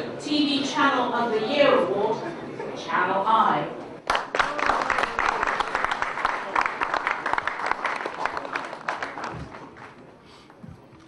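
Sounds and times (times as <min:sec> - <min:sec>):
audience applauding: 0:04.0 - 0:10.1.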